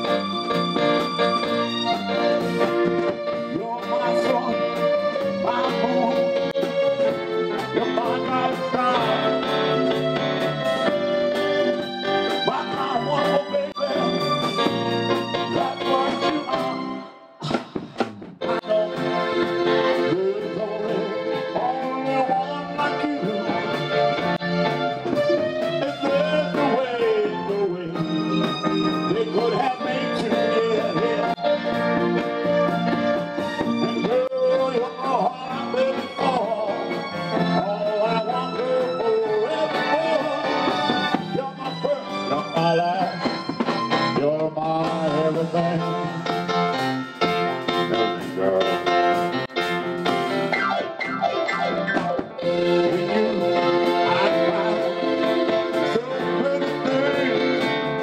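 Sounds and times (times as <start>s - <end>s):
electronic organ chords: 0.0s - 58.0s
soul band music: 0.0s - 58.0s.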